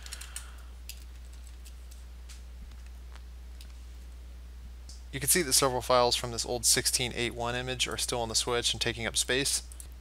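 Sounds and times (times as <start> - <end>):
computer keyboard clicks: 0.0 - 2.0
low electrical hum: 0.0 - 10.0.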